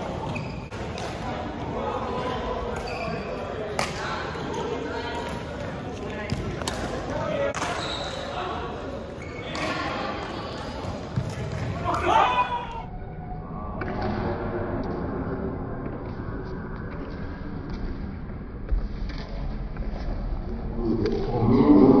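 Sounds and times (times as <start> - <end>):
rackets hitting shuttlecock: 3.7 - 4.5, 5.2 - 7.8.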